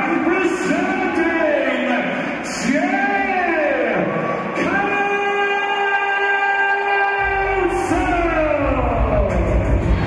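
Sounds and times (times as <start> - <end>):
thumping bass beat: 7.2 - 10.0.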